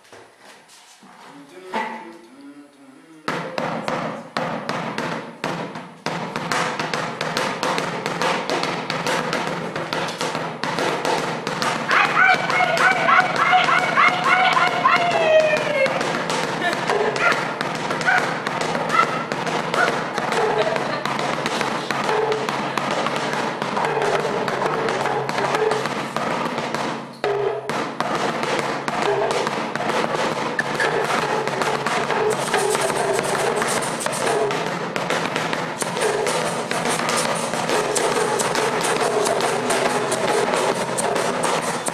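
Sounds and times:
bucket drum struck with sticks: 3.4 - 41.9
talking drum played with stick: 6.2 - 41.9.

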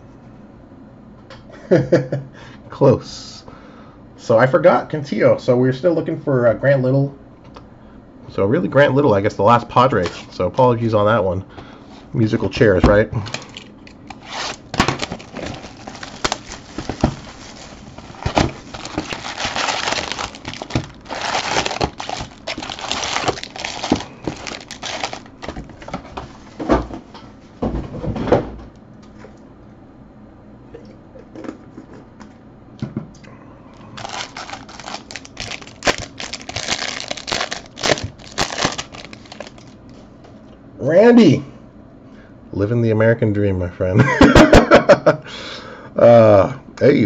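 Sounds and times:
foil card packs crinkling: 13.2 - 26.3, 33.8 - 40.0
pack wrapper tearing open: 13.3 - 25.9, 33.9 - 39.8.

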